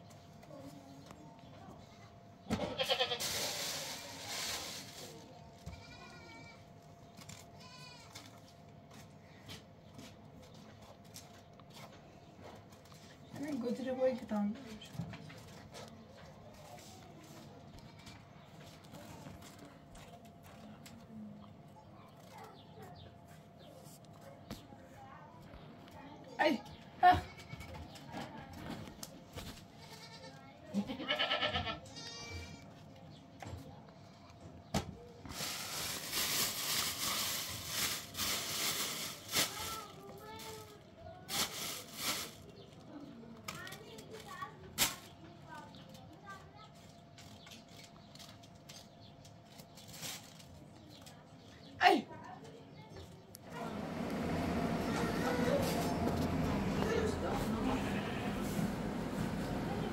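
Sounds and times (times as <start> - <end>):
goat bleating: 2.6 - 3.3, 5.7 - 6.6, 29.8 - 32.7, 57.8 - 58.4.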